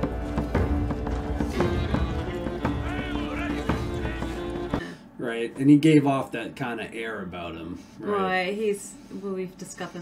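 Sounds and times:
horse hooves clopping: 0.0s - 4.8s.

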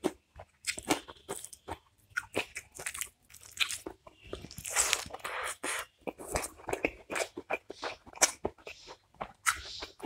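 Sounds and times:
crunchy chewing and biting: 0.0s - 10.0s.

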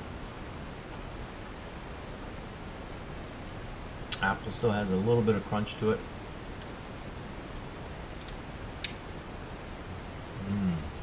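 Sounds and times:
low room hiss: 0.0s - 11.0s
crunchy chewing clicks: 8.2s - 9.0s.

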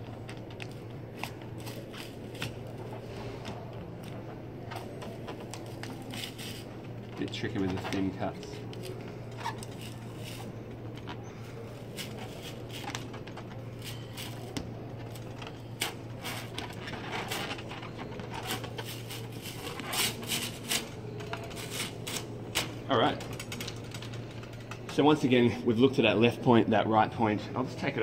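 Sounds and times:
plastic tape crackling as peeled: 0.0s - 22.8s
steady low hum: 0.0s - 28.0s.

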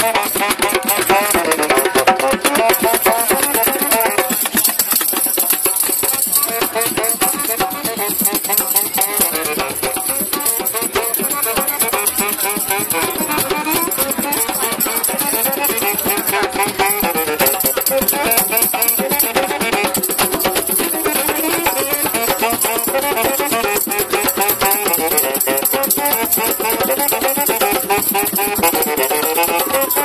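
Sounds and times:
saxophone melody: 0.0s - 4.5s, 5.8s - 30.0s
hand percussion groove: 0.0s - 30.0s
rattling shaker: 0.0s - 30.0s.

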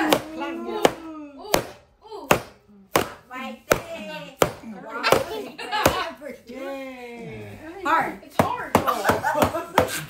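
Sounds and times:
people talking: 0.0s - 2.3s, 3.3s - 10.0s.

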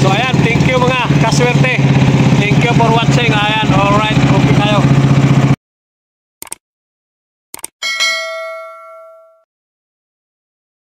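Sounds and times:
notification bell ding: 7.8s - 9.5s.

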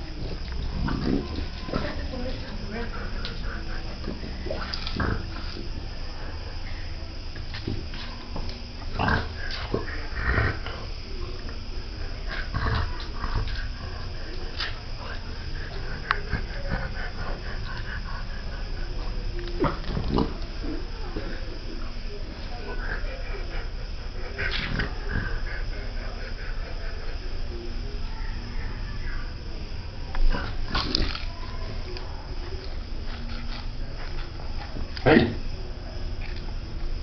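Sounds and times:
dog breathing noisily: 0.0s - 7.4s, 8.1s - 19.5s, 20.5s - 29.4s.

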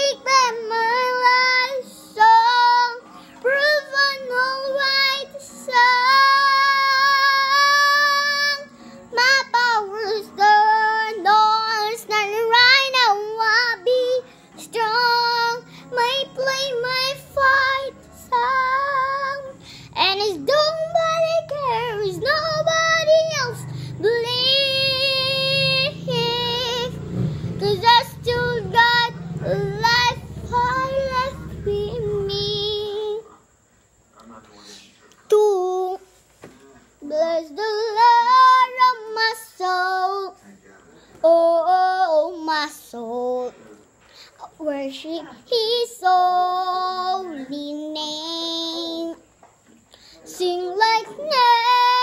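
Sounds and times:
girl singing: 0.0s - 33.3s, 35.3s - 36.2s, 37.0s - 40.4s, 41.2s - 43.6s, 44.4s - 49.3s, 50.1s - 52.0s.

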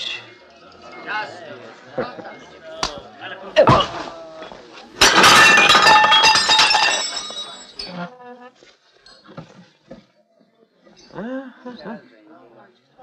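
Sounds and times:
glass smashing: 5.0s - 7.9s
glass shards clinking: 5.0s - 8.0s.

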